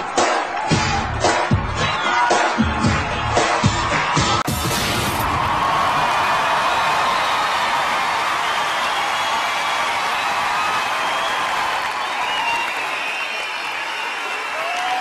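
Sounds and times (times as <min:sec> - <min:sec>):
audience applauding and cheering: 0:00.0 - 0:15.0.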